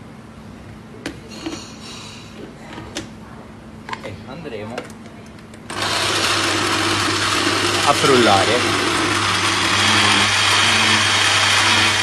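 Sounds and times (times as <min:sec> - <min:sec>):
blender motor running: 0:05.7 - 0:12.0.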